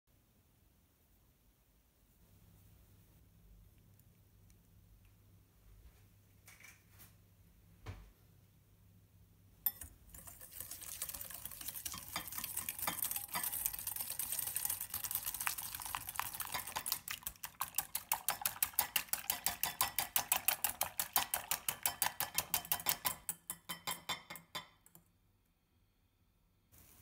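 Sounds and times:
whisk scraping in ceramic bowl: 0:09.7 - 0:23.5.

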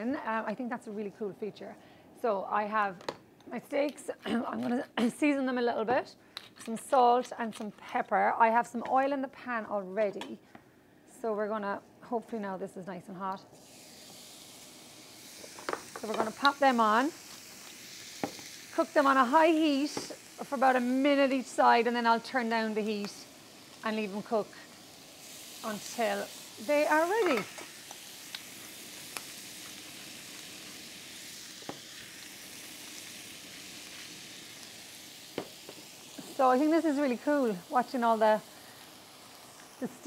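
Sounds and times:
steak sizzling in a frying pan: 0:13.6 - 0:40.0.

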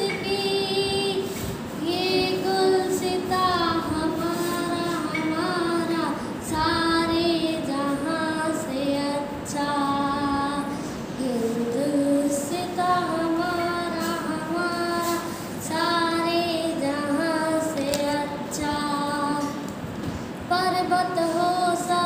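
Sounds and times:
girl singing unaccompanied: 0:00.0 - 0:22.0.

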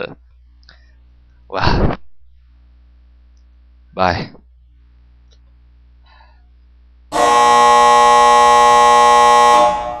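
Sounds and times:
wrong answer buzzer: 0:07.1 - 0:10.0.

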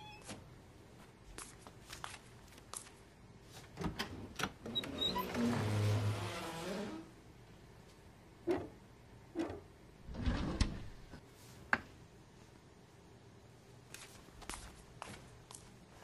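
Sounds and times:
sliding cabinet door rolling: 0:04.7 - 0:07.1, 0:09.4 - 0:11.2
drawer clattering on metal runners: 0:09.4 - 0:11.2.

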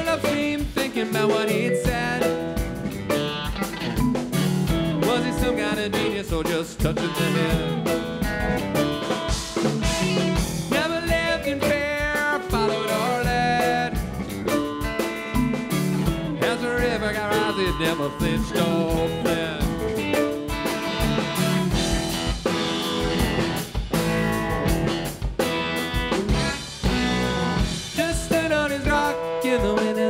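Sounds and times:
bass guitar: 0:00.0 - 0:30.0
bending lead guitar line: 0:00.0 - 0:30.0
drum kit steady beat: 0:00.0 - 0:30.0
electric guitars: 0:00.0 - 0:30.0.

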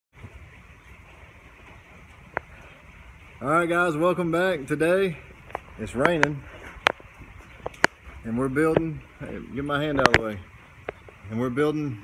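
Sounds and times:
rain falling: 0:00.1 - 0:12.0.

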